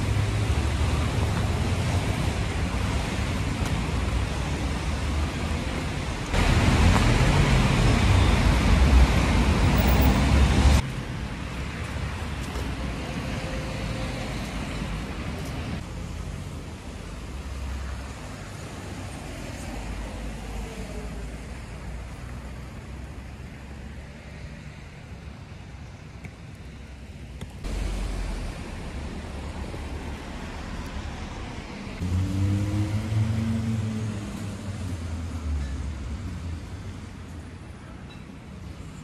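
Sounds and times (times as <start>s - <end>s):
heavy vehicle engine hum: 0.0s - 10.9s, 27.6s - 36.5s.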